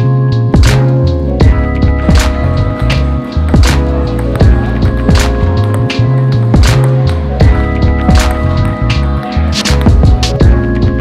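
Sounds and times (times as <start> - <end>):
lo-fi music with keyboard chords: 0.0 - 11.0.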